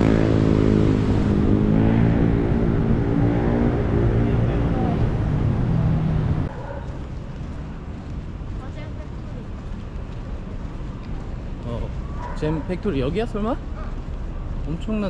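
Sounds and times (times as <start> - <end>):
busy road traffic: 0.0 - 15.0
street ambience: 0.0 - 15.0
vehicle engine humming: 0.0 - 15.0.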